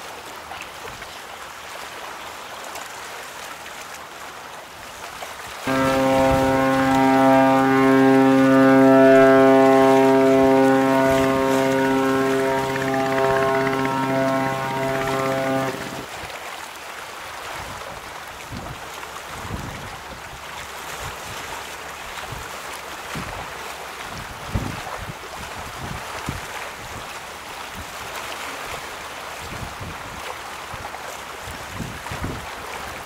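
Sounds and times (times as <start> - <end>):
ship's horn blast: 5.6 - 16.1
water rushing from bow wave: 5.6 - 16.1.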